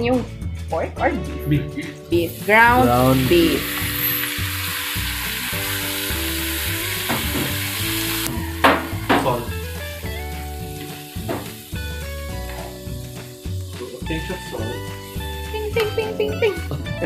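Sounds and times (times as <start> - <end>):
meat sizzling in a wok: 2.1 - 17.0.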